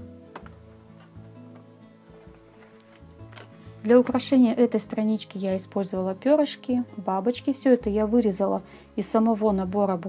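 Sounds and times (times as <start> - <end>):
quiet background music: 0.0 - 10.0
paper card tapping: 0.3 - 4.2.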